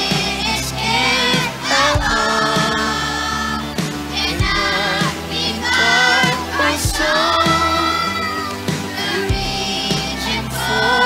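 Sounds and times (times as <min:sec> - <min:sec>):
children's choir singing: 0:00.0 - 0:11.0
instrumental accompaniment with beat: 0:00.0 - 0:11.0.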